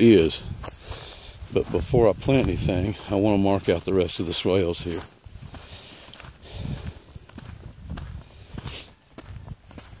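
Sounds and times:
footsteps on dry grass: 0.0 - 10.0.

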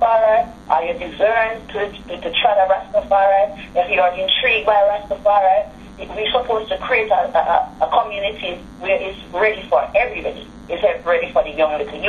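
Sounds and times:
person talking over telephone line: 0.0 - 12.0.

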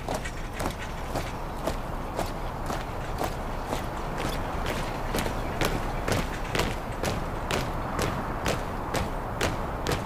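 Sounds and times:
soldiers marching in step: 0.0 - 10.0.

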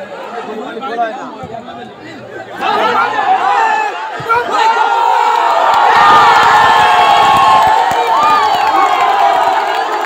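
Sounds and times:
football crowd cheering and shouting: 0.0 - 10.0.

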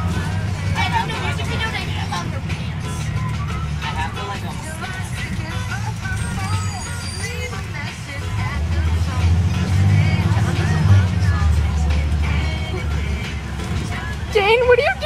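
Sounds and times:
faint passengers chatter: 0.0 - 7.5
bus engine and road rumble: 0.0 - 15.0.

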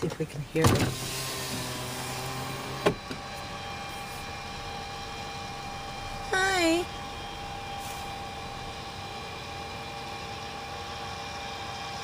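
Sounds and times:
power window motor humming: 0.5 - 6.2
window motor clunk: 0.6 - 3.5.

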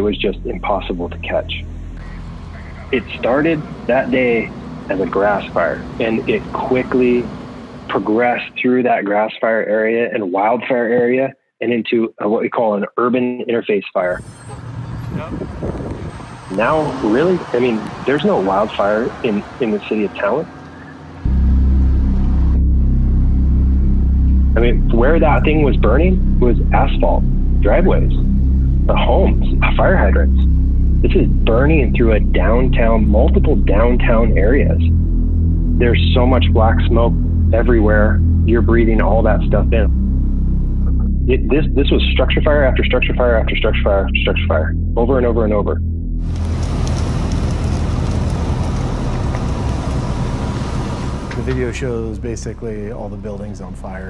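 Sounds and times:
vehicle engine rumble from inside: 0.0 - 8.4, 14.2 - 41.3, 45.8 - 54.0
low steady hum: 0.0 - 11.3, 15.2 - 54.0
large fire rushing: 14.1 - 21.2, 46.3 - 54.0
fire crackles: 46.3 - 52.2.

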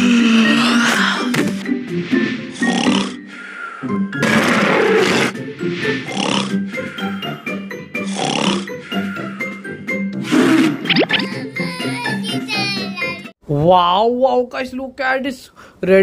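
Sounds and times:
rough cartoon vocal effects: 0.0 - 1.3, 2.5 - 3.2, 4.2 - 5.4, 6.0 - 7.1, 8.0 - 9.4, 10.2 - 11.5
cartoon background music: 0.0 - 13.4.

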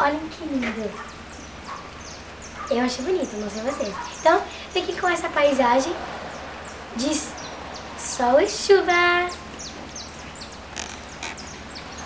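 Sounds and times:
birds chirping: 0.0 - 12.0
light rain hiss: 0.0 - 12.0.

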